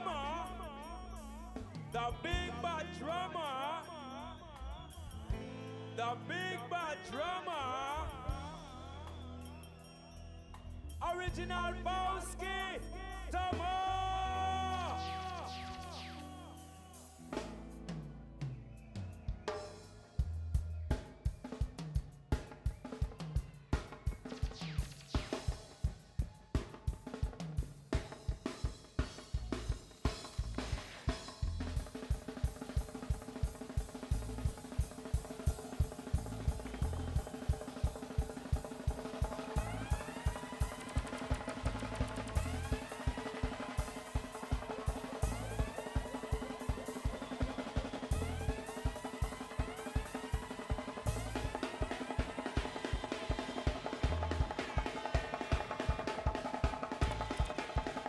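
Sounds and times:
drum kit solo: 13.3 - 58.0
pitched sweeps: 14.6 - 17.5.

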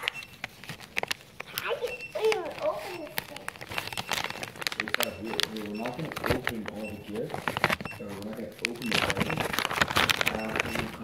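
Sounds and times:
plastic packet crinkling: 0.0 - 11.0
person speaking: 1.4 - 3.6, 4.8 - 11.0.

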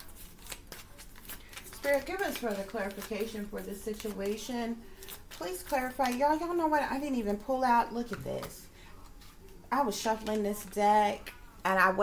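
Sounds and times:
cards being shuffled: 0.0 - 6.6.

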